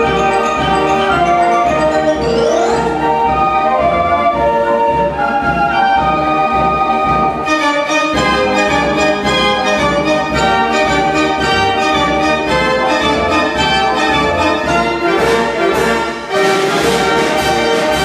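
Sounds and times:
mechanical pipe organ playing: 0.0s - 16.0s.

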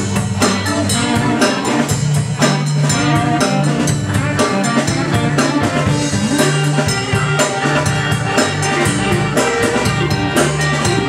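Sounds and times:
bass guitar: 0.0s - 11.0s
drum kit steady beat: 0.0s - 11.0s
electric guitar: 0.0s - 11.0s.

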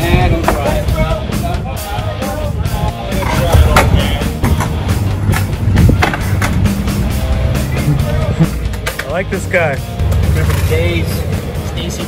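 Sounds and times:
music with steady beat: 0.0s - 12.0s
skateboard rolling on pavement: 2.7s - 9.2s.

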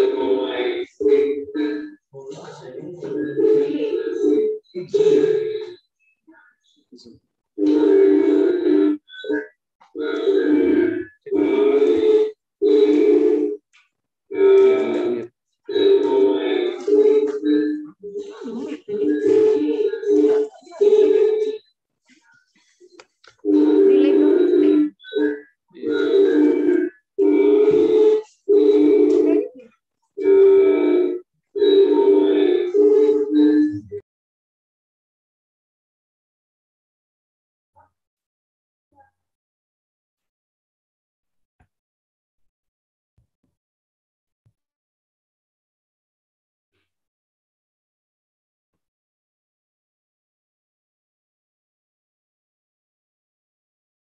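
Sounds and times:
woman's voice in held phrases: 18.0s - 21.5s, 23.6s - 24.8s.

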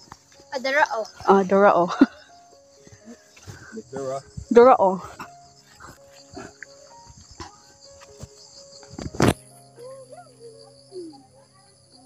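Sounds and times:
high insect chorus: 0.0s - 12.0s.

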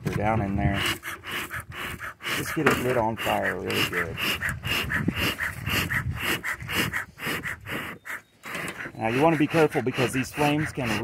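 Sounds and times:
bellows puffing air: 0.5s - 11.0s.

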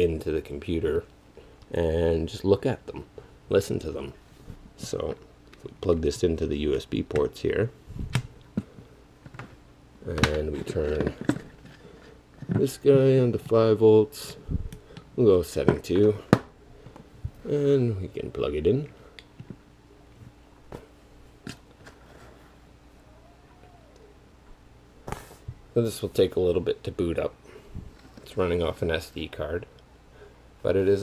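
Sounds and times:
low steady hum: 0.0s - 31.0s.

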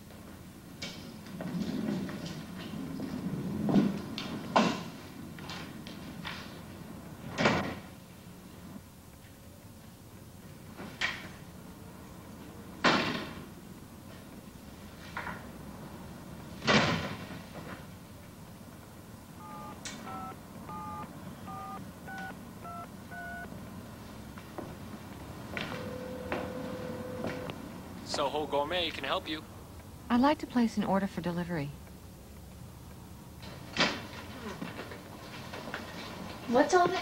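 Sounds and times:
two-tone keypad beeps: 19.4s - 23.5s, 25.7s - 27.6s.

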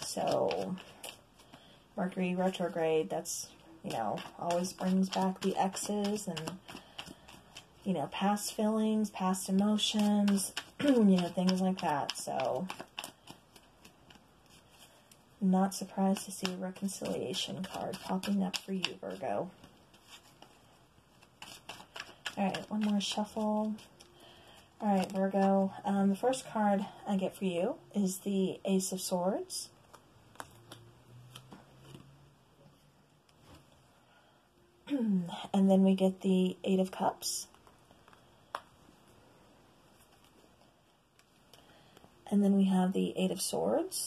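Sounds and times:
cards rustling while shuffled: 0.0s - 26.2s, 29.8s - 32.2s, 39.9s - 42.0s.

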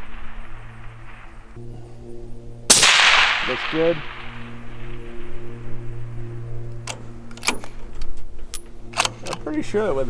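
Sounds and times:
rifle shot echo: 0.0s - 1.6s, 2.7s - 5.9s
steady low hum: 0.0s - 10.0s
rifle bolt metallic clicks: 6.7s - 9.5s.

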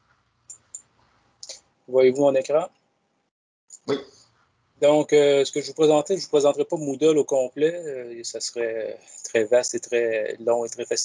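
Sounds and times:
man talking: 1.4s - 2.7s, 4.8s - 11.0s.

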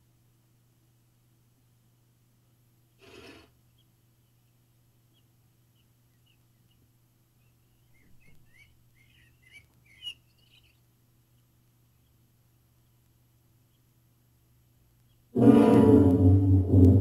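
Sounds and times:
faint bird chirps: 2.9s - 14.0s, 14.8s - 15.4s.

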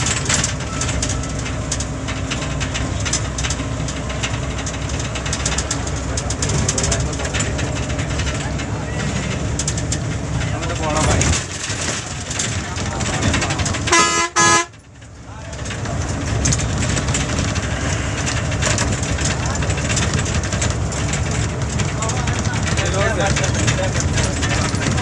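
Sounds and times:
bus engine and tyre noise: 0.0s - 25.0s
vehicle horn blasts: 13.9s - 14.7s.

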